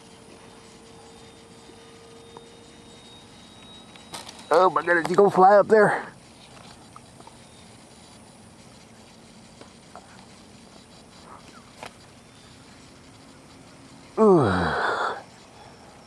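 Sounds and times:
distant model airplane drone: 0:00.0 - 0:16.0
small ticks: 0:00.0 - 0:16.0.

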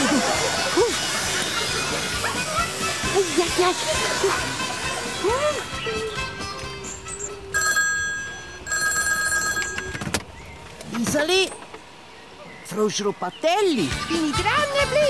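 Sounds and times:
electronic telephone ringing: 0:07.2 - 0:10.1.

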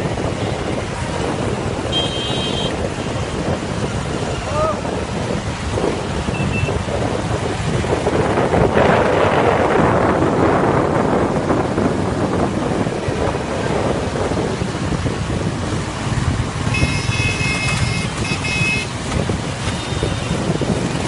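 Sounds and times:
motorcycle traffic noise: 0:00.0 - 0:21.0
wind on microphone: 0:00.0 - 0:21.0.

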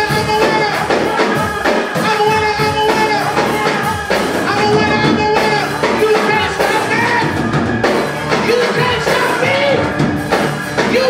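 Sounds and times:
drum kit fast beat: 0:00.0 - 0:11.0
people singing: 0:00.0 - 0:11.0.

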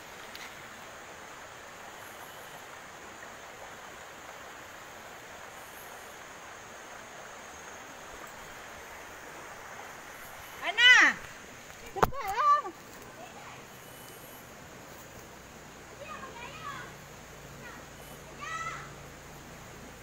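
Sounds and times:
water rushing over rocks: 0:00.0 - 0:13.7.

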